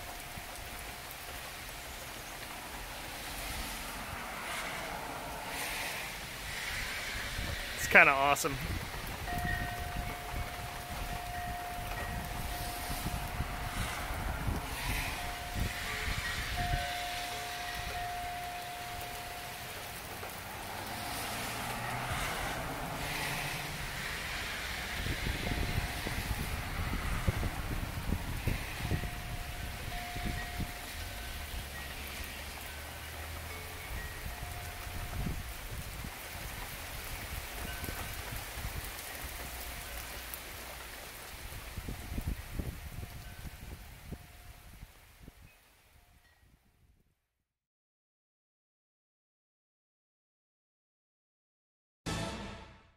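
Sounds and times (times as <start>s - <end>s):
rain on concrete and lawn: 0.0s - 46.6s.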